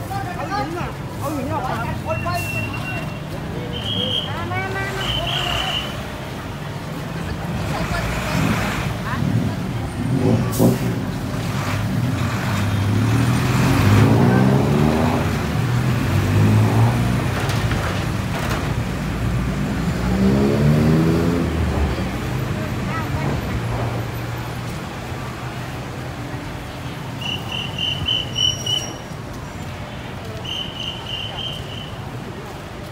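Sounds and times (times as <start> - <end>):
street traffic: 0.0 - 32.9
truck diesel engine revving: 7.5 - 17.4, 19.0 - 22.6.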